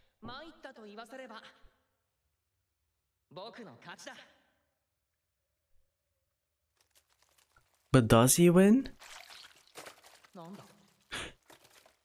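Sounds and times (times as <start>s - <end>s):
person speaking: 7.9s - 9.0s.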